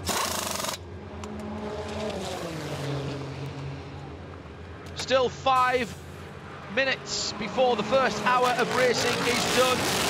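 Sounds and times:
race car engine passing by: 1.2s - 4.1s, 6.4s - 10.0s.

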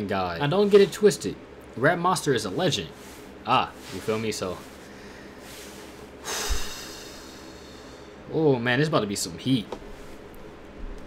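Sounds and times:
man's sudden breath through nose: 4.9s - 8.2s.

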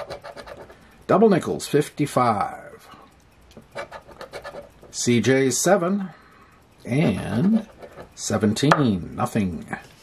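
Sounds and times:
scratching a lottery ticket: 0.0s - 0.8s, 3.6s - 5.3s, 6.9s - 8.6s.

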